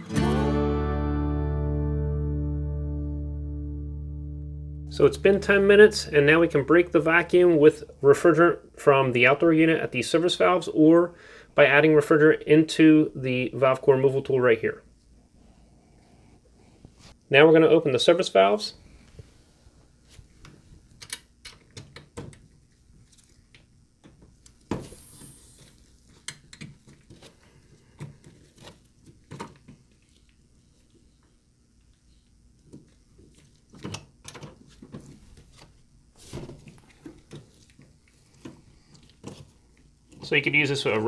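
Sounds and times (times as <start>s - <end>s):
brief hiss: 24.8s - 25.8s.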